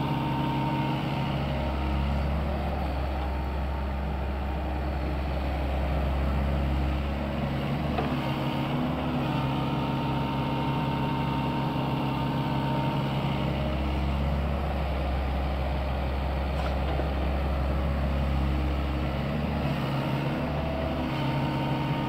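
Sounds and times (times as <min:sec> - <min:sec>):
excavator diesel engine running: 0:00.0 - 0:22.0.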